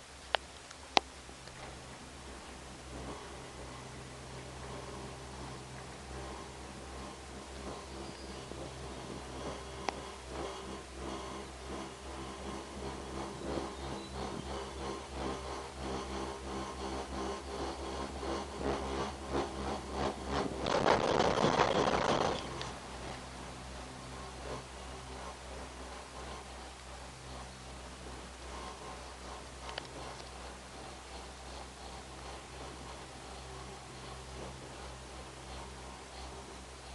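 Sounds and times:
cable car cabin hum: 0.0s - 36.9s
light ticks and rattles: 0.0s - 36.9s.

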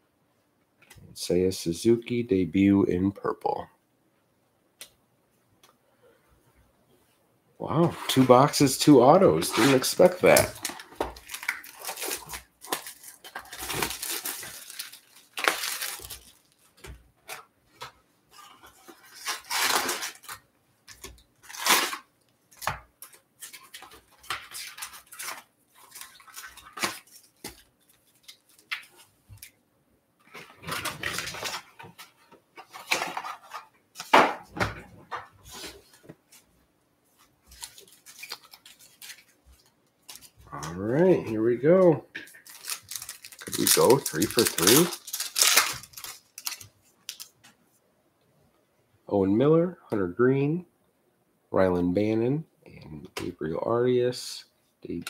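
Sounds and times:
card packs rustling: 7.7s - 29.5s, 30.2s - 36.5s, 37.2s - 47.4s
plastic shrink wrap crinkling: 8.0s - 17.5s, 18.3s - 29.6s, 30.2s - 34.1s, 37.3s - 41.0s, 42.2s - 47.4s.

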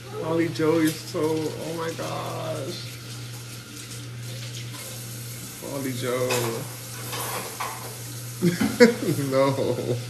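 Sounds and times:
low hum with hiss: 0.0s - 10.0s
man speaking: 0.2s - 2.9s, 5.6s - 6.7s
man laughing: 8.4s - 10.0s.

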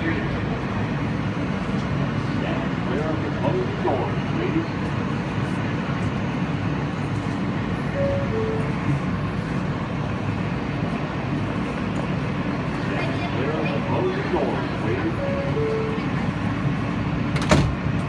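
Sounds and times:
subway car hum and rumble: 0.0s - 18.0s
recorded announcement voice: 2.4s - 4.8s, 12.8s - 16.2s
two-note door chime: 8.0s - 8.8s.

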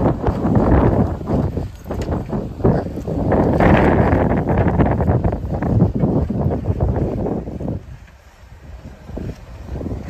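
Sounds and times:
footsteps on dry dirt: 0.0s - 10.0s.

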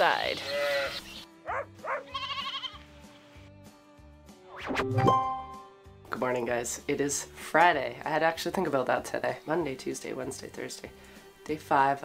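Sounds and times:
quiet background music: 0.0s - 12.0s
sheep bleat: 0.3s - 2.9s.

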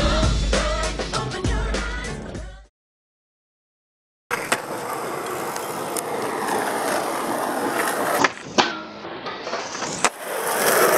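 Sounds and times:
skateboard wheels rolling on asphalt: 4.3s - 8.6s, 9.4s - 10.9s.

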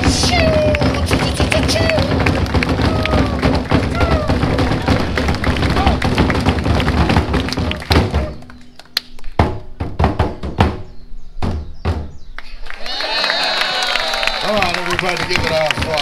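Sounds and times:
person speaking: 0.0s - 3.4s
large drums beating: 0.0s - 8.6s, 9.4s - 12.3s, 14.6s - 16.0s.

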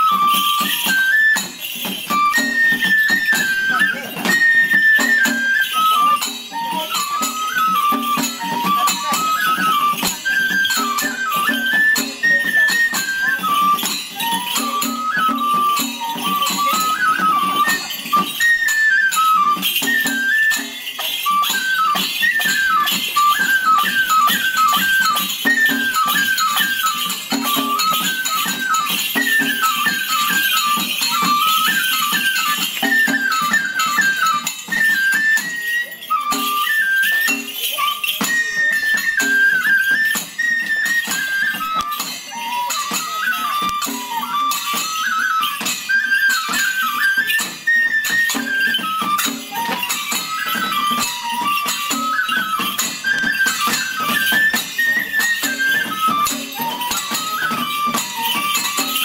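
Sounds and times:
bamboo flute melody: 0.0s - 59.0s
jangling percussion: 0.0s - 59.0s.

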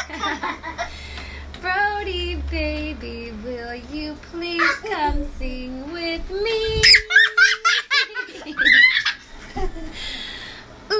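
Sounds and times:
young child giggling and squealing: 6.7s - 7.8s, 8.4s - 9.2s.

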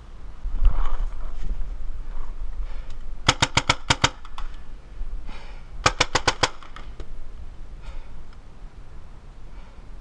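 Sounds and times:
paintball marker firing: 3.2s - 4.6s, 5.8s - 7.1s.

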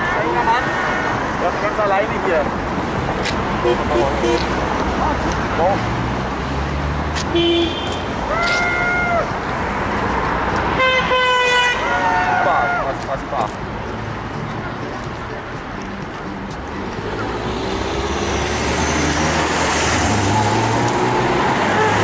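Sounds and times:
street traffic noise: 0.0s - 22.0s
car horns honking: 3.6s - 4.6s, 7.2s - 8.6s, 10.7s - 12.6s, 21.3s - 22.0s.

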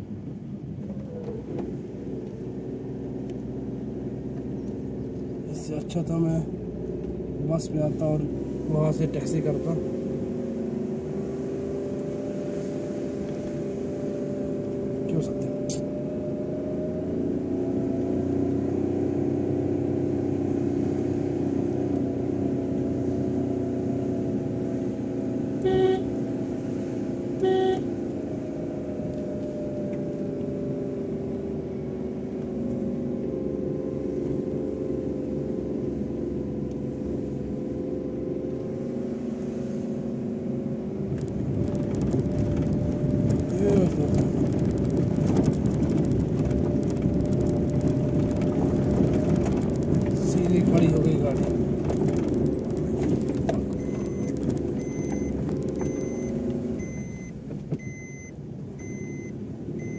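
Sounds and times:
car engine running: 0.0s - 59.9s
car horn toots: 25.6s - 26.2s, 27.4s - 27.9s.

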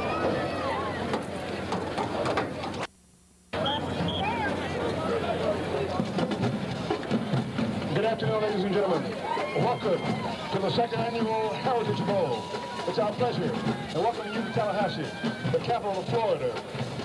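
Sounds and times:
chatter of spectators: 0.0s - 2.9s, 3.5s - 17.0s.

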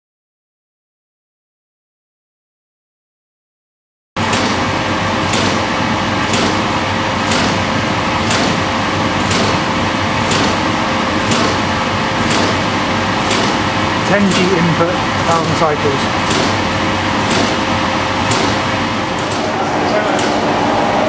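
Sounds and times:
shaker table machine noise: 4.2s - 21.0s.

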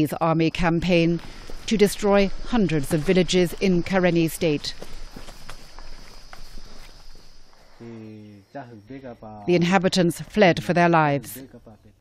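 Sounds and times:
leaves rustling: 0.6s - 8.2s
footsteps through undergrowth: 0.8s - 7.8s.

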